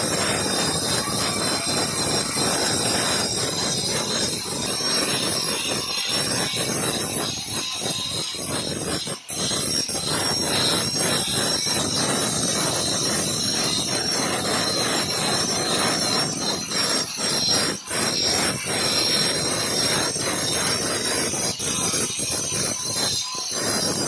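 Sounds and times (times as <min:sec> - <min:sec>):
angle grinder grinding stone: 0:00.0 - 0:24.0.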